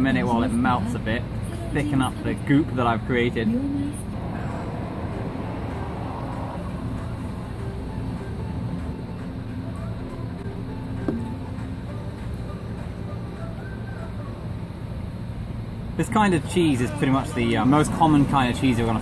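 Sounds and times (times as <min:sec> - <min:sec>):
city street traffic hum: 0:00.0 - 0:19.0
falling whine: 0:03.8 - 0:19.0.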